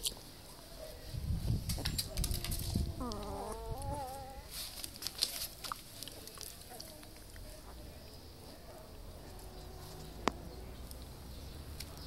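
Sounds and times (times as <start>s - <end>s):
newborn puppy whining: 2.1s - 4.7s.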